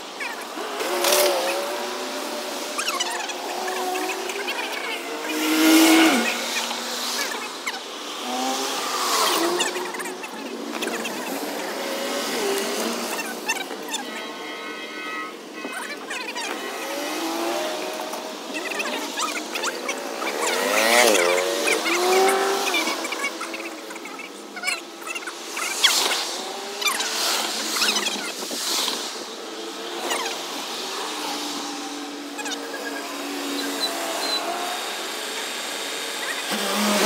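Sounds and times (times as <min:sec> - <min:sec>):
cars driving past: 0:00.2 - 0:37.0.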